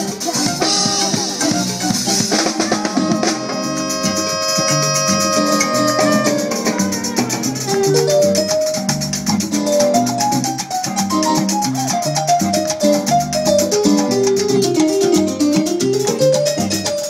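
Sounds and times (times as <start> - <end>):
salsa band playing: 0.0 - 17.0.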